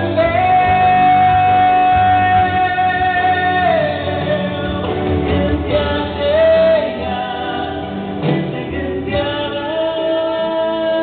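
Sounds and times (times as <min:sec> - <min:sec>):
instrumental backing: 0:00.0 - 0:11.0
man and woman singing duet: 0:00.0 - 0:11.0.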